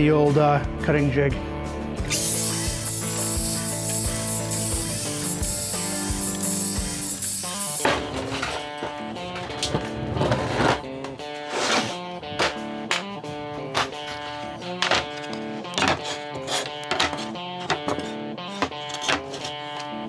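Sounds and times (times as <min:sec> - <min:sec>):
guitar background music: 0:00.0 - 0:20.0
miter saw cutting boards: 0:02.1 - 0:08.0.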